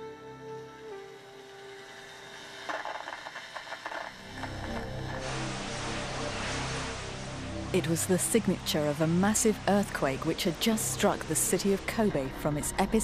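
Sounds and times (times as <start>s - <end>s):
soft music tones: 0.0s - 3.0s, 4.2s - 13.0s.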